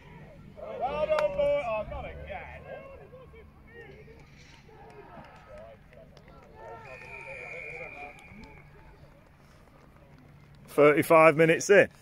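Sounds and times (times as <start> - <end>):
distant players shouting: 0.0 - 9.1
whistle-like tone: 6.6 - 8.9.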